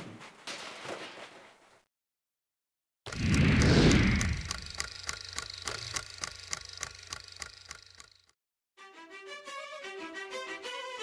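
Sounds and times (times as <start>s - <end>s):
low hum: 3.1s - 8.1s
rapid mechanical ticking: 3.1s - 8.3s.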